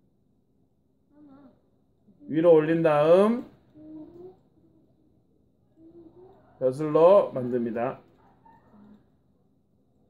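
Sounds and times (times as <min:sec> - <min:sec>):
faint murmur: 0:02.9 - 0:10.0.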